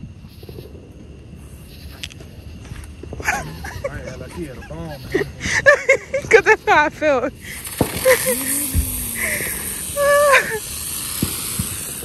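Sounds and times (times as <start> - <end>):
firework hissing: 6.4 - 12.0.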